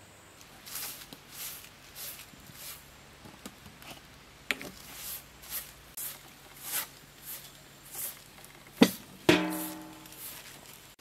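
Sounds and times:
soft rustles: 0.4 - 8.7, 9.4 - 11.0
sharp knock: 8.8 - 10.0.

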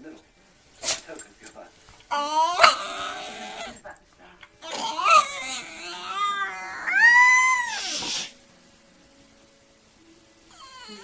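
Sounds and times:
dog whining vocal noises: 2.1 - 3.8, 4.6 - 8.3, 10.5 - 11.0.

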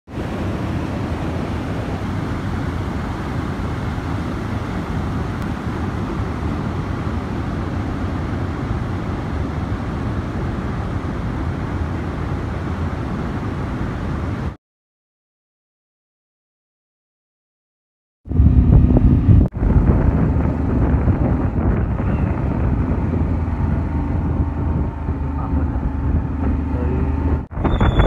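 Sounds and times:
waterfall rushing and splashing: 0.1 - 14.6.

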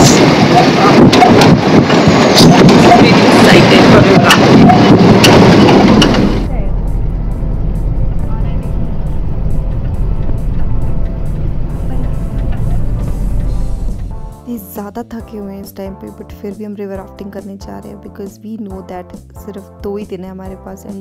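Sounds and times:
wind and road noise: 0.0 - 15.9
low car rumble: 0.0 - 20.8
faint background music: 6.3 - 21.0.

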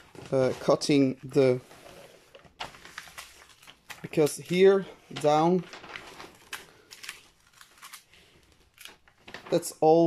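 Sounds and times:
plastic film rustling: 0.0 - 10.0.

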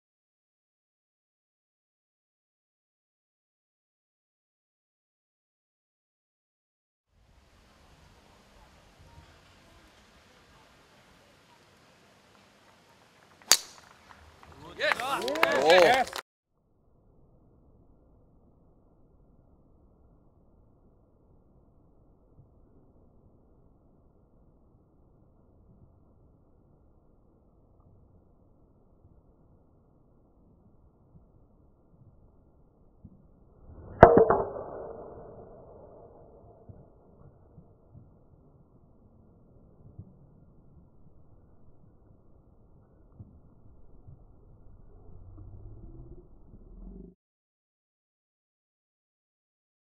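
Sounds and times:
golf club striking ball: 13.4 - 13.9, 33.8 - 35.3.

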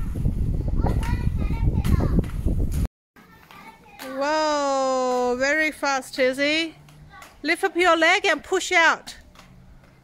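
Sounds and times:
children's voices: 0.7 - 2.2, 3.2 - 4.6, 6.9 - 7.4.

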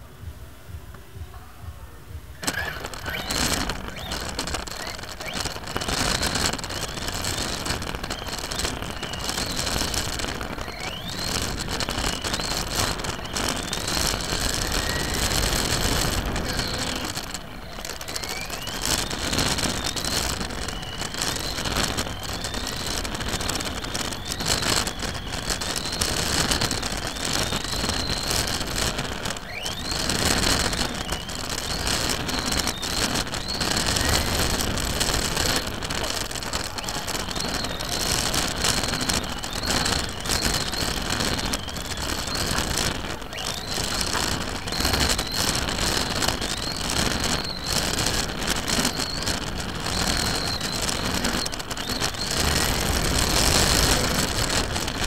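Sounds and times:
rc car motor whine: 2.4 - 55.0.

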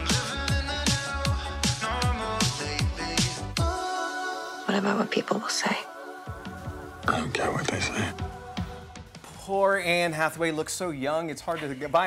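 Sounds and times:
film trailer music: 0.0 - 11.0
whispered dialogue: 6.6 - 9.8.

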